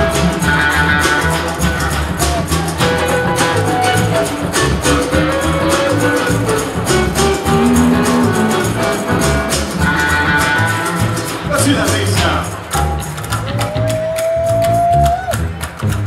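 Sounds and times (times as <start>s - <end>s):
cigar box guitar plucked notes: 0.0s - 13.5s
tin-can drums beat: 0.0s - 16.0s.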